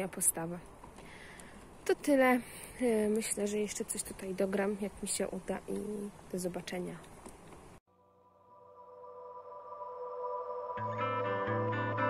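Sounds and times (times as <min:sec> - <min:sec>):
held chord of steady tones: 0:07.9 - 0:12.0.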